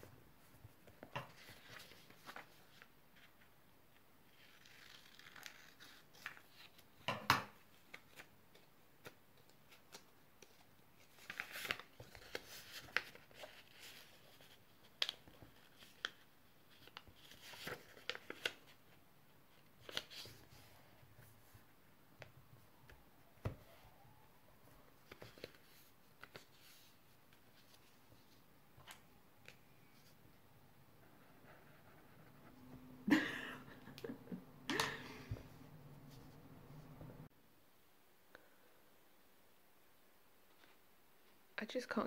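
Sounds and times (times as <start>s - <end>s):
paper folding and creasing: 0.8s - 3.5s, 4.2s - 7.0s, 7.6s - 21.6s, 22.2s - 30.3s.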